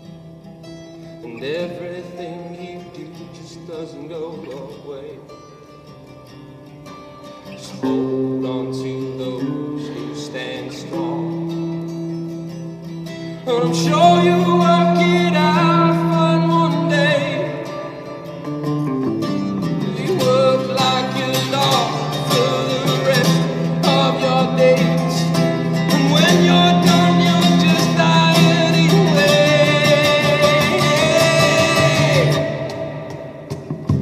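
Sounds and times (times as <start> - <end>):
live pop-rock band with guitars: 0.0 - 34.0
person singing: 19.2 - 34.0.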